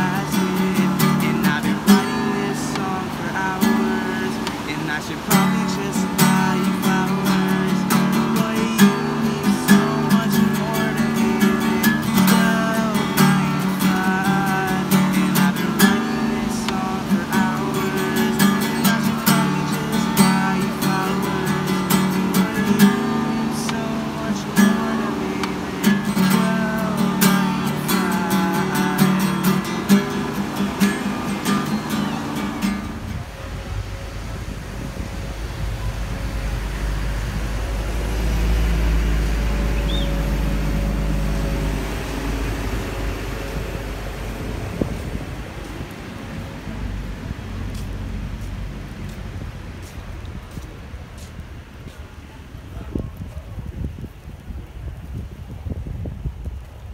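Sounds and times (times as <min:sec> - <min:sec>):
fingerpicked acoustic guitar: 0:00.0 - 0:50.6
street noise: 0:00.0 - 0:56.9
wind rumble on microphone: 0:00.0 - 0:56.9.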